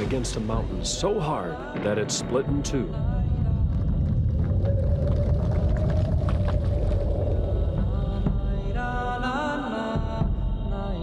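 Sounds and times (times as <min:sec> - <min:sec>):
deep steady rumble: 0:02.8 - 0:09.1.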